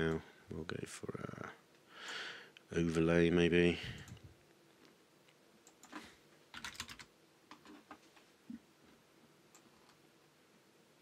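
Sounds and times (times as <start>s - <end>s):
computer keyboard and mouse clicks: 5.6s - 8.0s.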